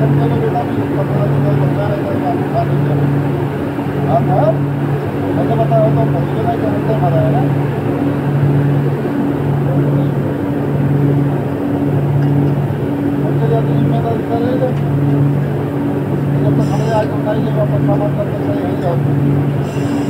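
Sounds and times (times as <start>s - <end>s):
machinery running: 0.0s - 20.0s
pulsing low hum: 0.0s - 20.0s.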